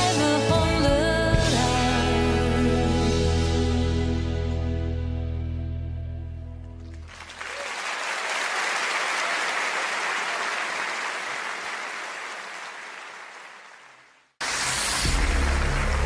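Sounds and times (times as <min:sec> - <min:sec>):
audience applause: 0:06.9 - 0:16.0.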